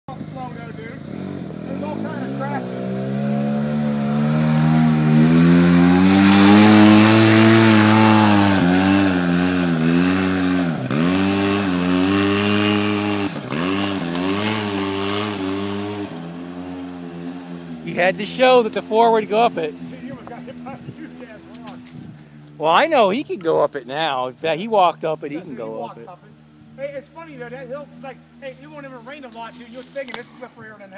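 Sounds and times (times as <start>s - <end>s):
off-road vehicle engine revving: 0.1s - 30.9s.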